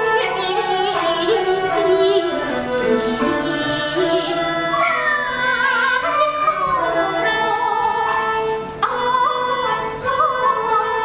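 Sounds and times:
high voice opera singing: 0.0 - 11.0
musical accompaniment: 0.0 - 11.0.

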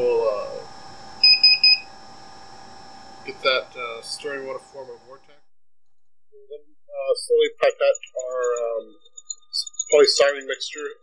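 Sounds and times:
lab equipment hum: 0.0 - 5.4.

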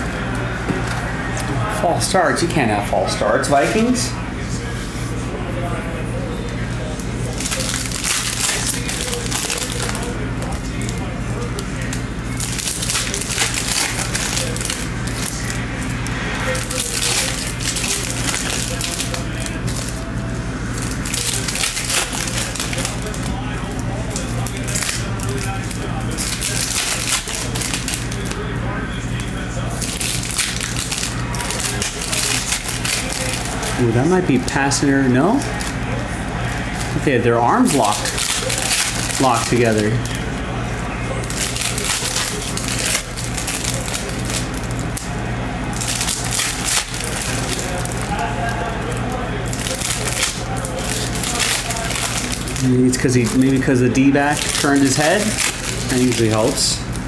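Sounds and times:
foil wrappers crinkling and tearing: 6.4 - 57.0.

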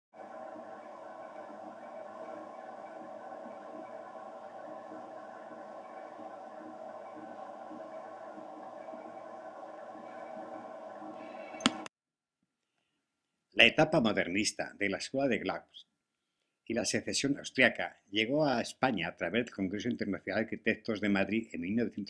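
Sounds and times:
drone of sustained tones: 0.1 - 11.6.

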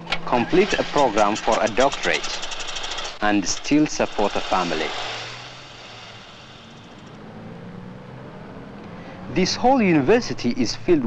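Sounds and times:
cars driving past: 0.0 - 11.0.

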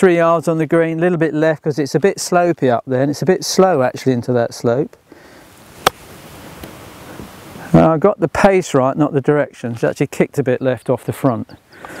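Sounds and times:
faint background hiss: 0.0 - 12.0
golf club striking ball: 5.8 - 6.0.

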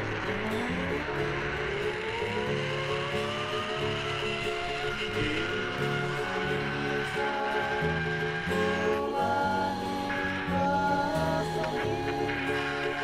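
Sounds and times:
background music: 0.0 - 13.0
zip-line trolley whine on cable: 0.0 - 13.0.

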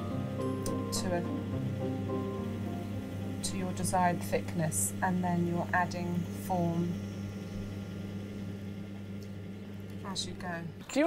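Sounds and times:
potter's wheel motor humming: 0.0 - 11.0.

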